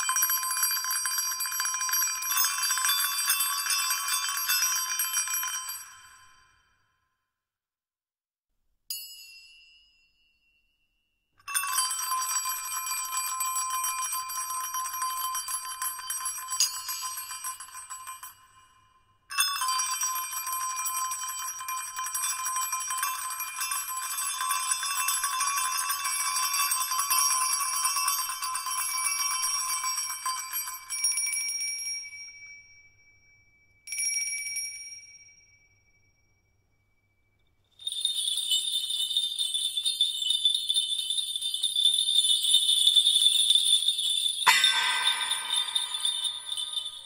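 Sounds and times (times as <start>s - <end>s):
small metal bells jingling: 11.5s - 18.4s, 37.7s - 47.0s.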